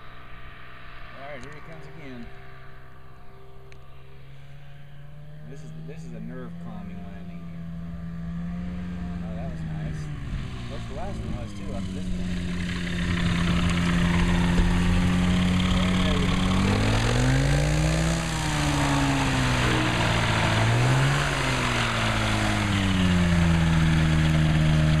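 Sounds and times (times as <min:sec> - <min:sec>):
light aircraft engine and propeller: 0:00.0 - 0:25.0.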